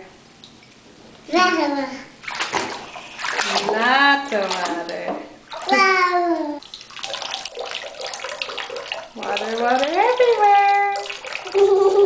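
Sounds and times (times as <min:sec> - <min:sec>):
bathwater splashing and running: 0:01.4 - 0:12.0.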